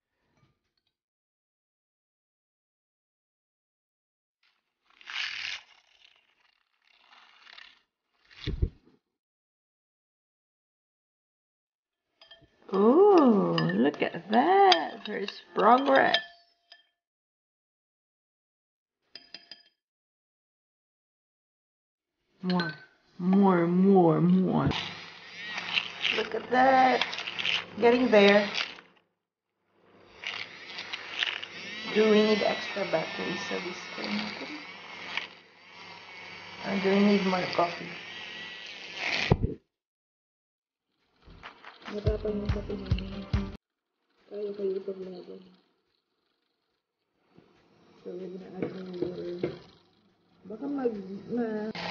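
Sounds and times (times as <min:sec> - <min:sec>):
milk frother whisking: 0:04.8 - 0:08.4, 0:12.2 - 0:16.8, 0:23.3 - 0:29.0, 0:30.1 - 0:39.4, 0:44.2 - 0:51.9.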